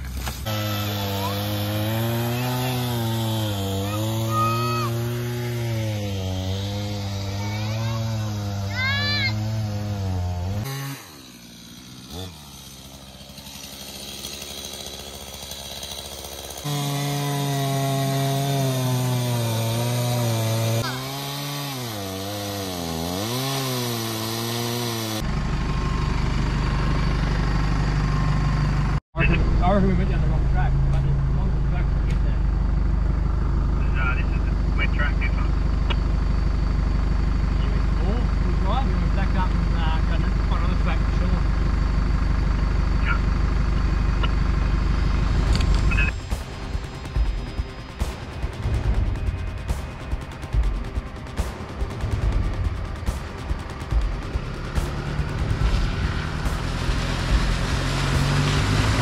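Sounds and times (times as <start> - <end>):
chainsaw cutting a log: 0.0 - 27.5, 51.4 - 59.0
vehicle driving on dirt track: 24.6 - 59.0.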